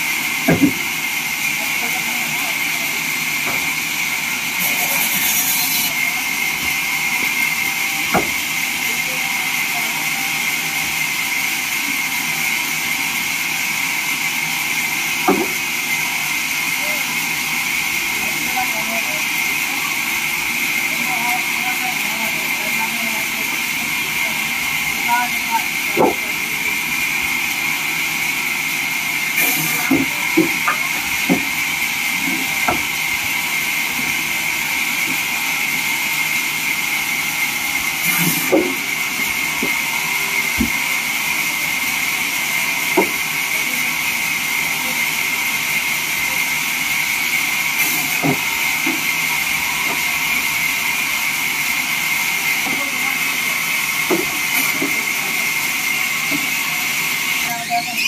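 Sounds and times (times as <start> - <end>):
band sawmill hissing: 0.0 - 58.0
wooden knocks of planks dropped: 0.5 - 0.8.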